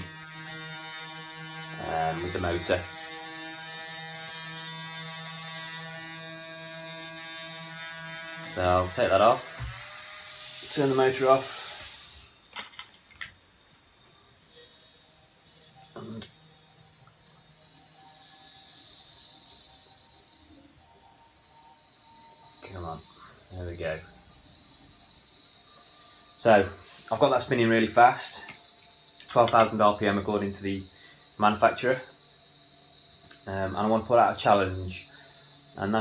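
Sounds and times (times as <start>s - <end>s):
electric motor buzzing whine: 0.0s - 36.0s.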